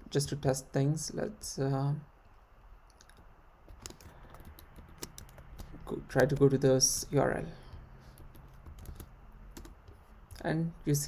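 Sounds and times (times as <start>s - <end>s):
faint computer keyboard typing: 2.9s - 6.6s, 7.6s - 10.5s.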